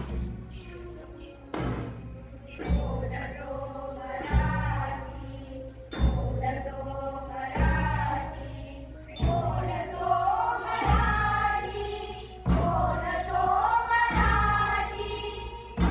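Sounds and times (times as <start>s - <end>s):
group of voices singing: 2.6s - 15.9s.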